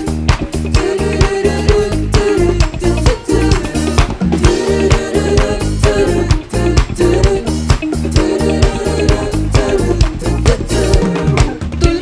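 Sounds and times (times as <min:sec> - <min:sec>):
live band playing upbeat groove: 0:00.0 - 0:12.0.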